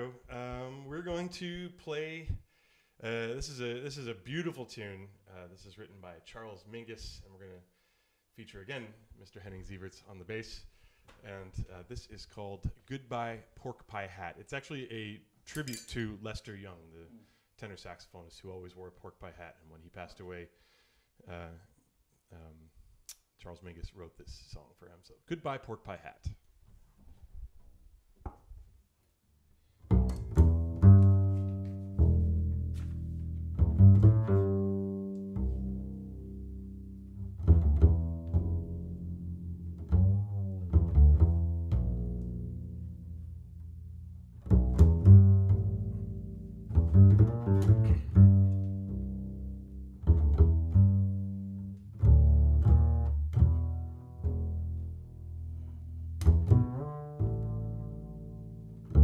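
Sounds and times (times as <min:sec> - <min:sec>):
double bass plucked: 0:29.8 - 0:59.0.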